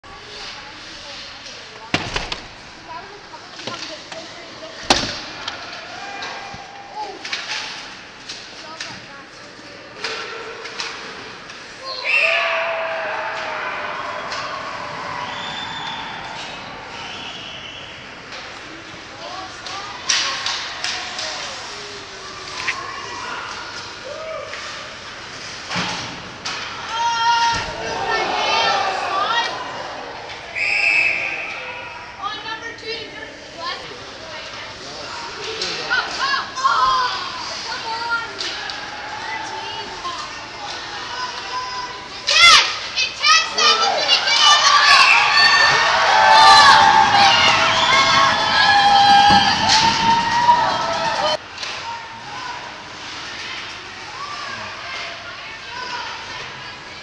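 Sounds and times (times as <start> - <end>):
puck and players banging boards: 3.5 - 9.1, 45.7 - 51.8
spectators shouting: 5.4 - 7.3, 12.0 - 17.5, 26.9 - 32.1, 42.3 - 51.4.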